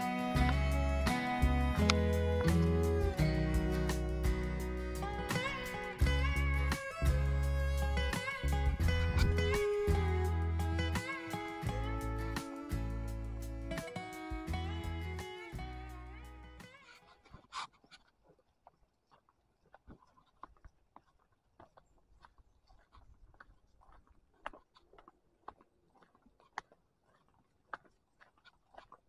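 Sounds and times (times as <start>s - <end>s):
footsteps on a dirt path: 0.0s - 10.2s, 16.7s - 29.0s
guitar background music: 0.0s - 16.8s.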